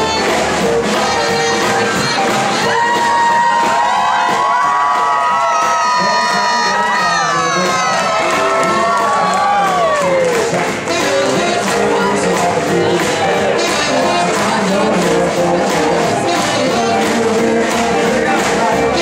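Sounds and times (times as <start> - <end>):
swing band music: 0.0 - 19.0
crowd cheering: 1.3 - 19.0.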